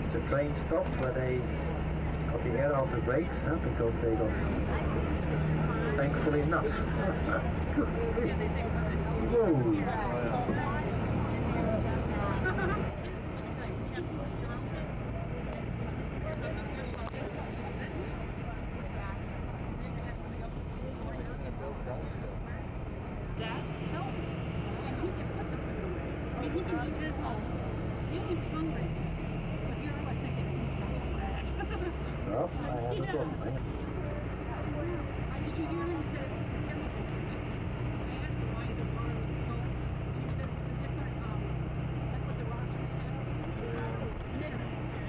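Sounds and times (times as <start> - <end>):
passengers chattering: 0.0 - 45.0
train rumbling on track: 0.0 - 45.0.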